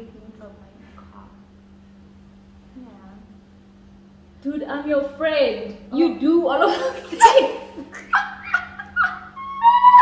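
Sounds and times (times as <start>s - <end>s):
women laughing: 6.6s - 10.0s
high squeal of laughter: 8.0s - 10.0s.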